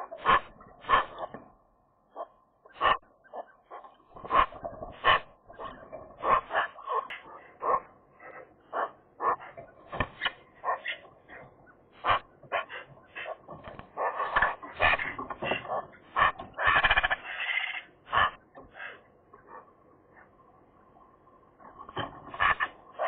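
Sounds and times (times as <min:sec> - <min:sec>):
magpies calling: 0:00.0 - 0:01.4, 0:02.1 - 0:20.4, 0:22.2 - 0:23.0.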